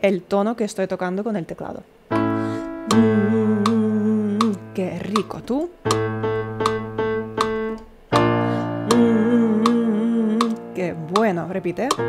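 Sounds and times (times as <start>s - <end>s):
electronic keyboard low note: 2.2s - 11.2s
steady click beat: 2.9s - 12.0s.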